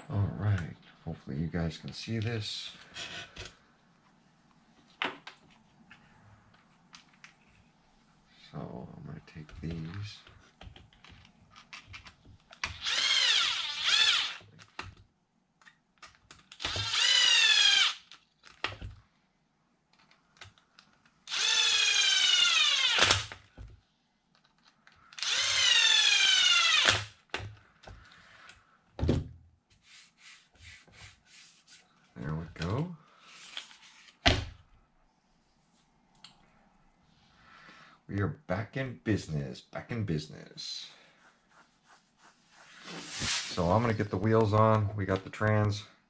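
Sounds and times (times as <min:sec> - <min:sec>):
electric screwdriver motor whine: 0:12.7 - 0:14.4, 0:16.6 - 0:18.0.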